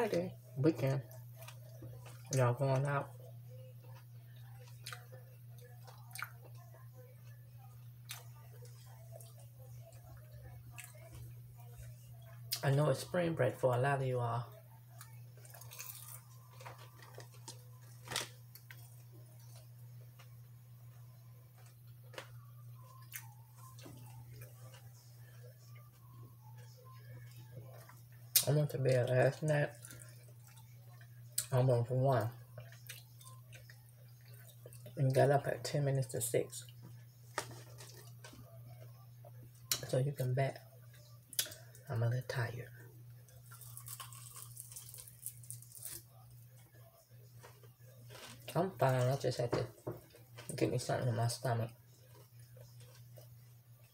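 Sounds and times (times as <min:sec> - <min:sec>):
low steady hum: 0:00.0 - 0:53.9
person chewing food: 0:01.1 - 0:02.9, 0:03.8 - 0:06.6, 0:08.0 - 0:12.6, 0:14.9 - 0:28.5, 0:29.4 - 0:31.5, 0:32.4 - 0:35.2, 0:40.8 - 0:41.8, 0:43.2 - 0:46.6, 0:52.0 - 0:53.9
person chewing crunchy food: 0:15.0 - 0:20.3, 0:21.5 - 0:25.0, 0:43.3 - 0:46.1.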